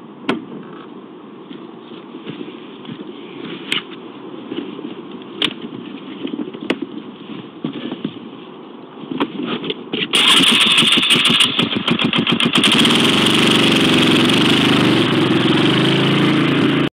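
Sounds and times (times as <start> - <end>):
engine starting and running: 10.1 - 16.9.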